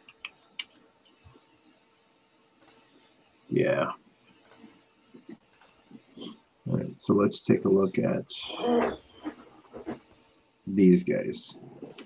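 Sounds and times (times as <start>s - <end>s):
person speaking: 3.5s - 4.0s, 6.2s - 9.0s, 10.7s - 12.0s.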